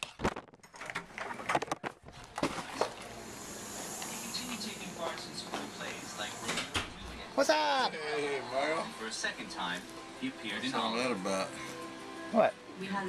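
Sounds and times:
faint voices: 3.3s - 9.6s.

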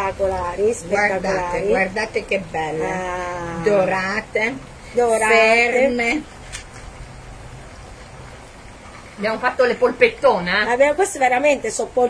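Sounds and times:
oil sizzling: 0.0s - 12.0s.

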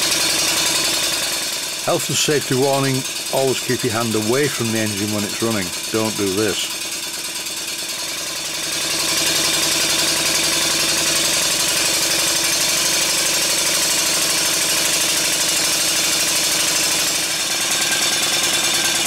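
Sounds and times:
model steam engine running fast: 0.0s - 19.0s.

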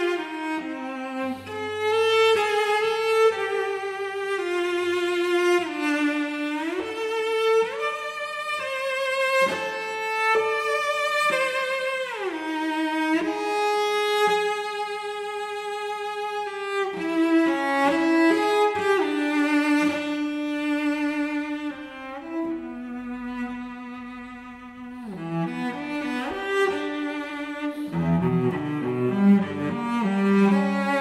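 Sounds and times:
solo cello melody: 0.0s - 31.0s.

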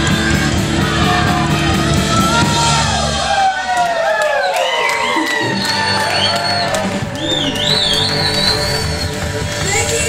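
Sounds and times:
steady bass line: 0.0s - 3.6s, 5.4s - 10.0s.

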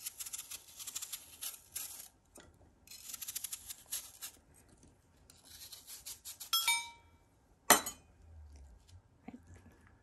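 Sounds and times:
knife cutting through apple: 0.0s - 2.2s, 2.9s - 4.4s, 5.3s - 6.5s.

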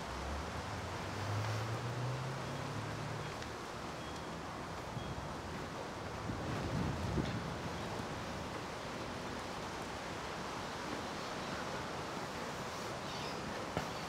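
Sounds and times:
outdoor background hiss: 0.0s - 14.0s.

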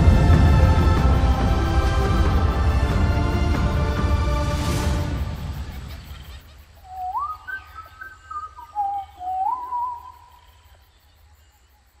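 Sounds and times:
whistled notes sliding up: 6.9s - 10.2s.

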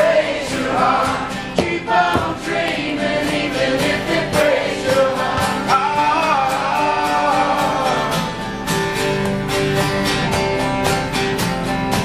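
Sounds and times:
voices singing together: 0.0s - 8.3s
strummed acoustic guitar: 0.0s - 12.0s.

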